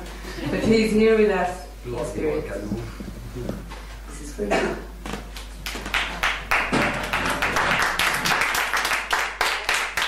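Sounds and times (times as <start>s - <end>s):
audience applause: 5.6s - 10.0s.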